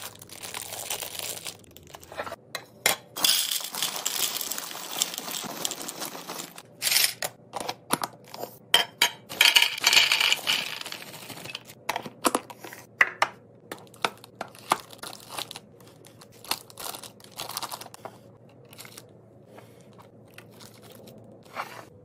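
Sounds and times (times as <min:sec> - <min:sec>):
bag crinkling: 0:00.0 - 0:02.2, 0:03.2 - 0:06.9, 0:13.8 - 0:18.0
snacks rattling into plastic bin: 0:03.2 - 0:07.1.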